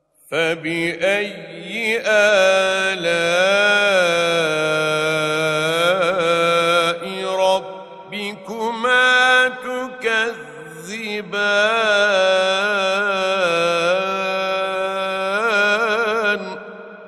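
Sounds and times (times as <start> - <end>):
man chanting melodically: 0.2 - 16.8.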